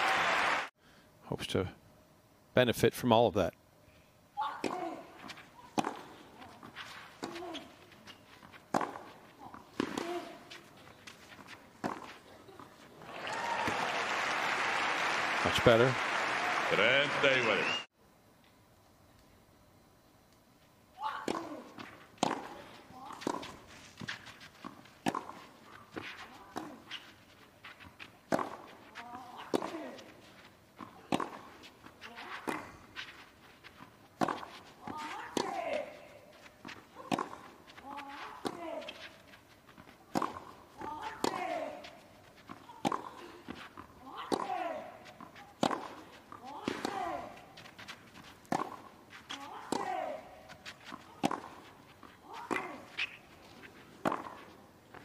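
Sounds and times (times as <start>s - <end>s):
racquets striking tennis ball: 4.6s - 14.6s, 21.2s - 55.0s.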